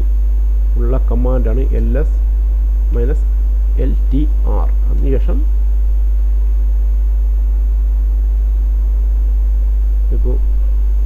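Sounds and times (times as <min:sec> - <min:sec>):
electrical mains hum: 0:00.0 - 0:11.0
faint high-pitched whine: 0:00.0 - 0:11.0.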